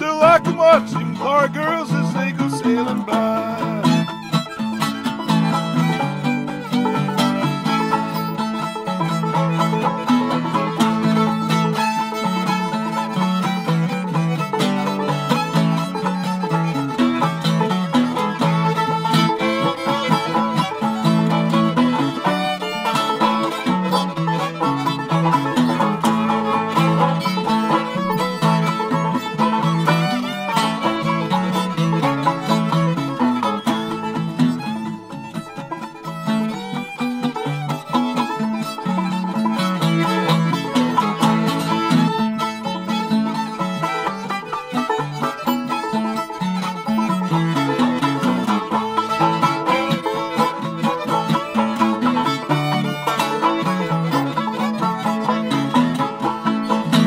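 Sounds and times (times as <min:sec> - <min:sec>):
banjo: 0:00.0 - 0:57.0
fiddle: 0:00.0 - 0:57.0
guitar: 0:00.0 - 0:57.0.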